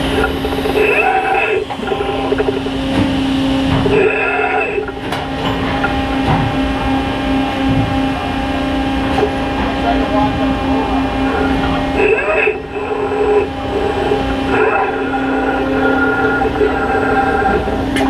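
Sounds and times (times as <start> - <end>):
machine humming and pulsing: 0.0 - 18.0
indistinct voices: 9.2 - 18.0.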